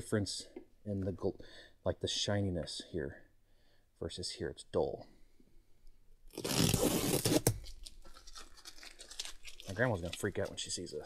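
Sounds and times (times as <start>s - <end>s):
tape ripping off leather: 6.3s - 10.4s.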